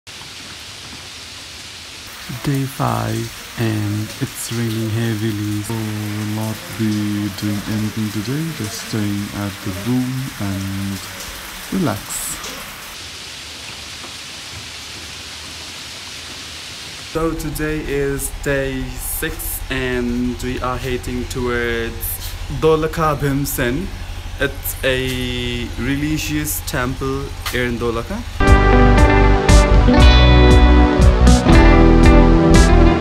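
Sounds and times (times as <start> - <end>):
heavy rain falling: 0.1 - 33.0.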